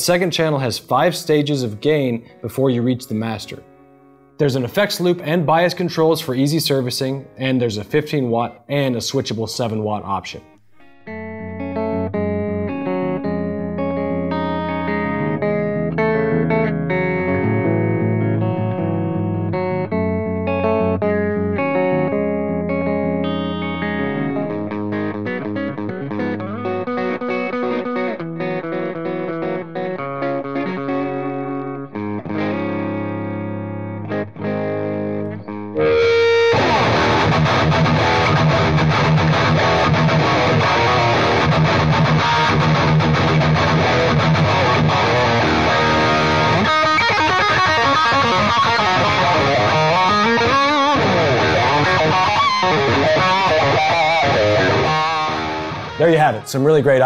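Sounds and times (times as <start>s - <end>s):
distorted electric guitar riffing: 10.4s - 57.0s
electric guitar clean picked notes: 10.4s - 57.0s.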